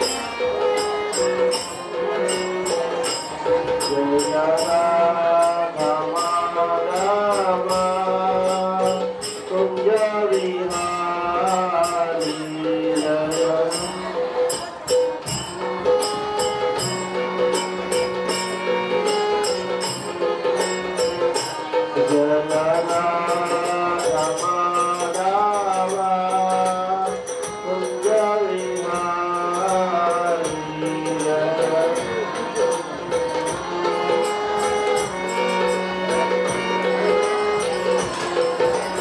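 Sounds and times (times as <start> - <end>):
hand cymbals striking: 0.0 - 39.0.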